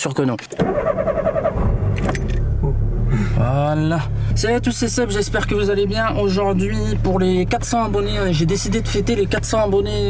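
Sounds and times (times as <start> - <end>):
car engine idling: 0.6 - 10.0.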